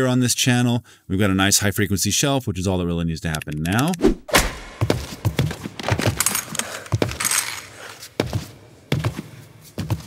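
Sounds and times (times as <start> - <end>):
thuds and impacts: 4.1 - 6.2
footsteps and scuffs: 4.3 - 10.0.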